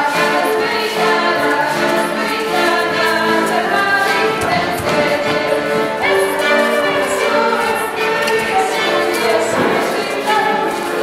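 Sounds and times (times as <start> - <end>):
accordion: 0.0 - 11.0
fiddle: 0.0 - 11.0
voices singing folk tune: 0.0 - 11.0.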